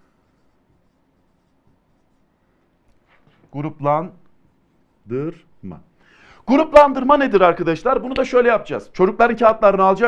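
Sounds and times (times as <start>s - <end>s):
marker writing on whiteboard: 0.0s - 3.5s.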